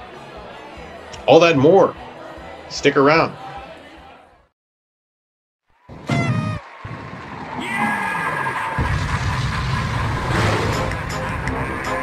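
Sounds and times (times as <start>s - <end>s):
deep rumbling explosion: 8.8s - 11.4s.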